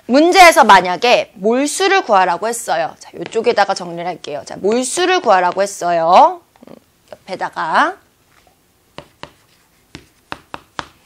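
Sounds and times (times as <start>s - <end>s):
writing tool tapping: 8.9s - 11.0s.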